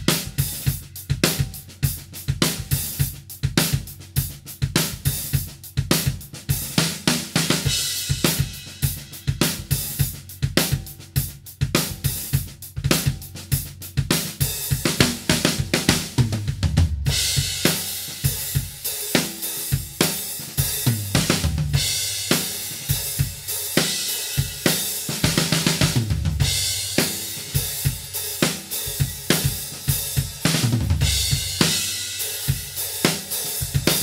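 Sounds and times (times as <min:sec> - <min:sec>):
drum kit groove: 0:00.0 - 0:34.0.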